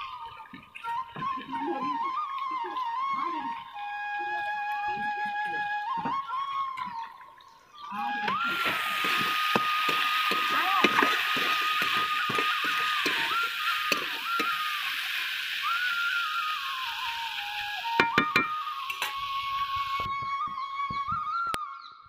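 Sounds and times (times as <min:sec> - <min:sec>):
held melody background music: 0:11.2 - 0:21.6.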